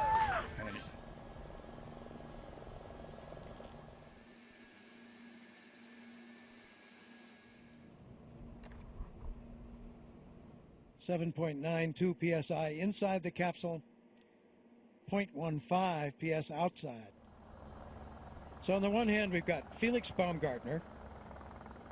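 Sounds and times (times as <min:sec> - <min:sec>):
faint steady hum: 0:00.0 - 0:16.2.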